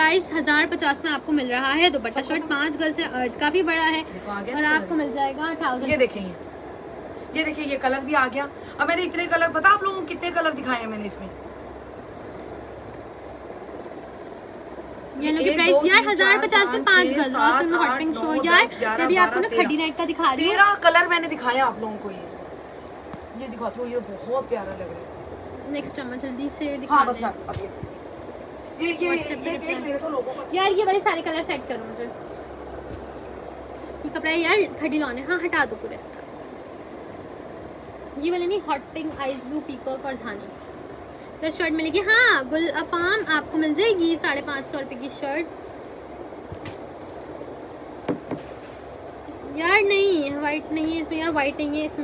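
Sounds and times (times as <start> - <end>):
steady hum and hiss: 0.0 - 52.0.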